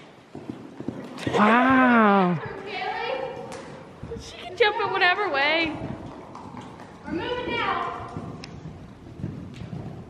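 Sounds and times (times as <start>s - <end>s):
horse hoofbeats on soft dirt: 0.0s - 1.4s, 2.5s - 10.0s.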